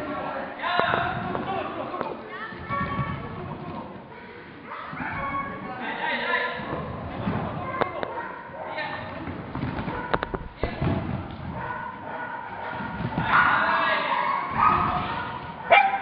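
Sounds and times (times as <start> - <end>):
dog barking: 8.1 - 8.9, 9.8 - 10.4, 11.5 - 16.0.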